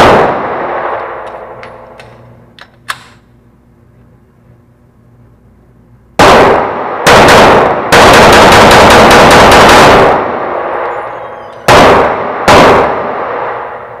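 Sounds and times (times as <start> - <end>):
pistol shots echoing indoors: 0.0 - 3.4, 6.2 - 14.0.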